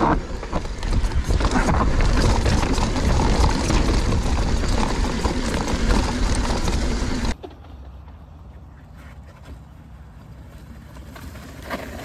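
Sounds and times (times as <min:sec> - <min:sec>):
bike knocking and rattling on rocks: 0:00.0 - 0:08.3
bike tyre noise: 0:00.0 - 0:12.0
quiet outdoor background: 0:00.0 - 0:12.0.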